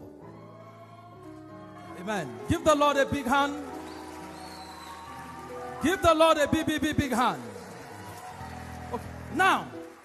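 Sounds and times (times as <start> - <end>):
congregation clapping lightly: 1.2 - 10.0.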